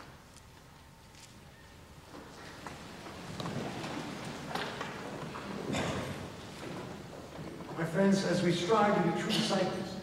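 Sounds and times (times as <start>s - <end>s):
wooden pews knocking and creaking: 2.1s - 7.9s.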